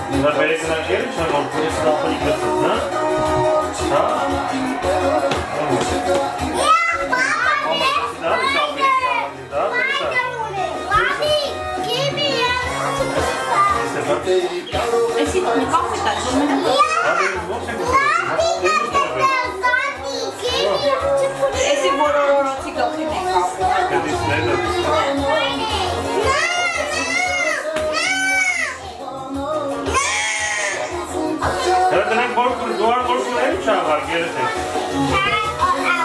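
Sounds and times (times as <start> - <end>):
background music: 0.0 - 36.0
children's excited chatter: 1.2 - 29.1, 29.8 - 31.8, 34.2 - 36.0
children squealing: 29.9 - 31.0.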